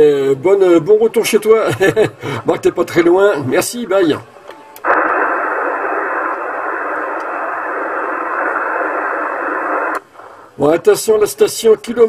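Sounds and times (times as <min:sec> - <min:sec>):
radio static hiss: 0:04.8 - 0:11.7.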